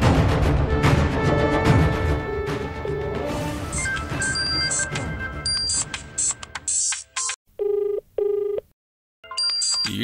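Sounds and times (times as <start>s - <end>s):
telephone ringback tone: 7.6s - 8.6s.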